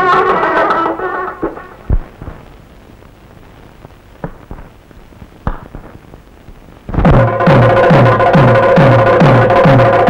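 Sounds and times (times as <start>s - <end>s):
loud music: 7.0s - 10.0s.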